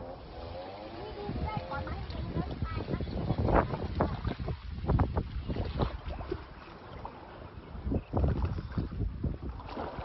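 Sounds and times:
wind buffeting microphone: 0.0s - 6.6s, 7.5s - 10.0s.

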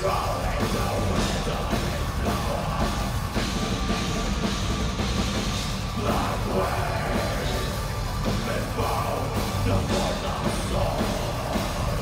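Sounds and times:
distorted electric guitars: 0.0s - 12.0s
pounding drum kit: 0.0s - 12.0s.

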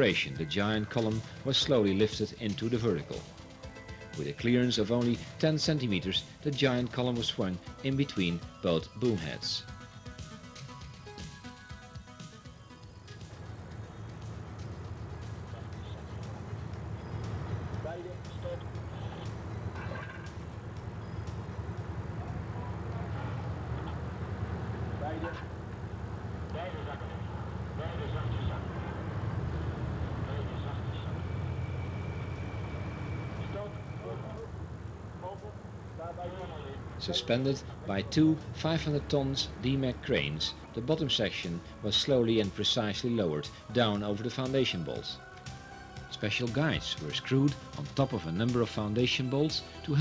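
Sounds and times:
diesel crane engines rumbling: 0.0s - 10.0s, 12.9s - 50.0s
workers' voices: 24.9s - 25.5s, 26.5s - 29.3s, 33.4s - 34.6s, 35.2s - 45.2s.

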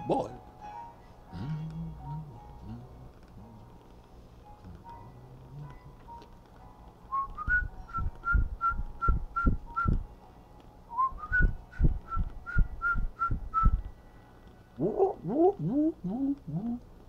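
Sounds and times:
person whistling a tune: 7.1s - 10.0s, 10.9s - 13.8s
low thumps: 7.3s - 10.0s, 11.1s - 13.9s.

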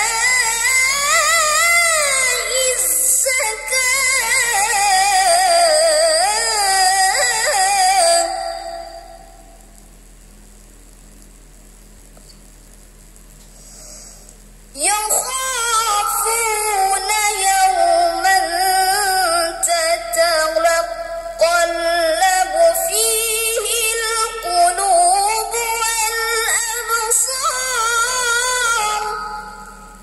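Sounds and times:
boy reciting melodically: 0.0s - 9.0s, 14.8s - 29.5s.

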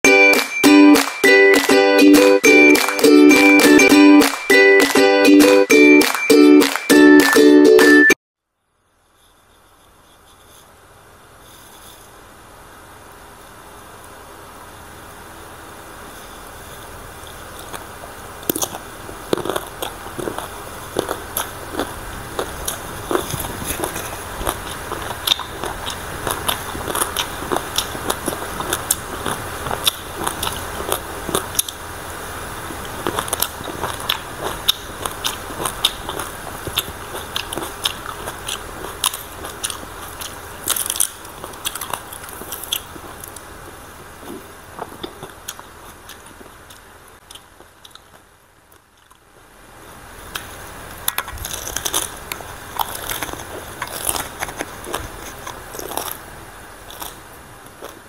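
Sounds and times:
crunchy chewing: 16.0s - 49.5s, 50.2s - 58.0s.

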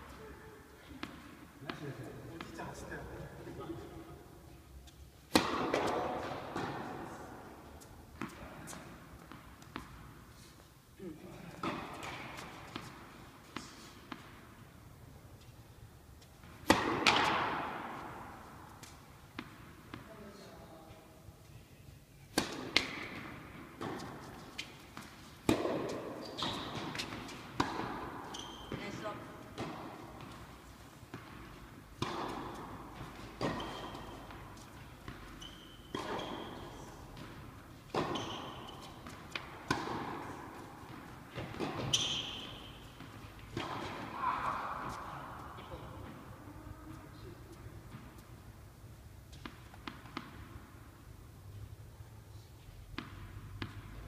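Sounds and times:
tennis balls struck and bouncing: 0.9s - 2.6s, 5.2s - 10.2s, 11.6s - 20.1s, 22.3s - 46.4s, 47.4s - 51.6s, 52.8s - 54.0s.

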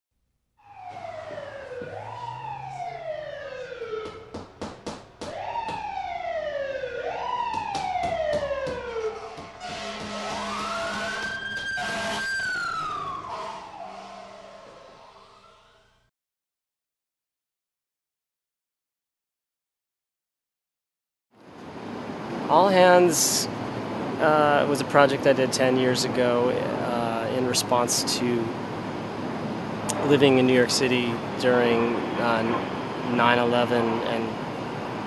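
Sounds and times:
emergency siren wailing: 0.6s - 4.6s, 5.2s - 16.1s.

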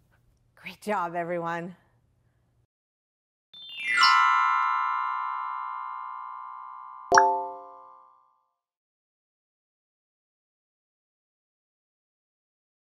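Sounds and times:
bright chime-like chord: 3.6s - 8.2s.

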